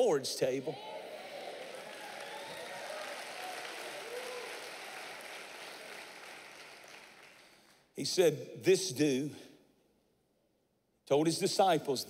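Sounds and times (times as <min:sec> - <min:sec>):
congregation applauding: 0:00.7 - 0:07.9.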